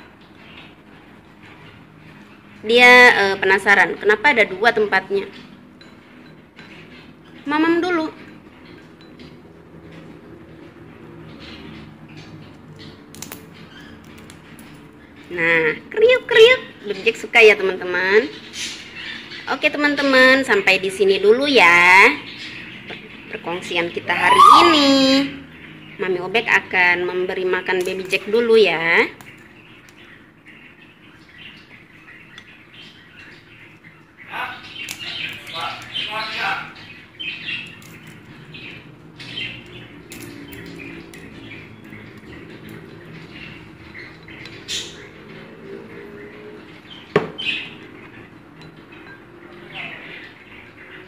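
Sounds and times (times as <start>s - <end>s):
beak cracking seeds: 13.1s - 14.4s.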